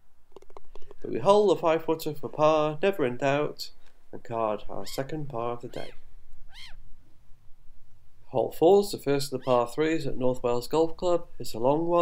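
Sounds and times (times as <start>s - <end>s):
gull call: 5.7s - 6.8s.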